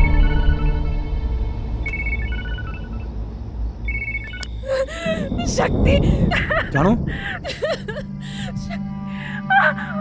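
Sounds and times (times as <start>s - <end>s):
phone ringtone beeps: 1.8s - 3.1s, 3.8s - 4.7s.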